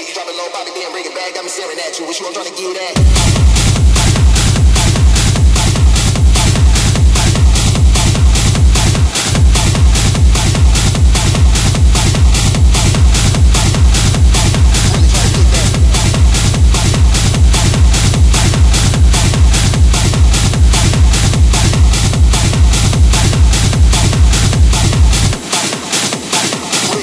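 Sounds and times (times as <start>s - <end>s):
techno kick drum: 3.0s - 27.0s.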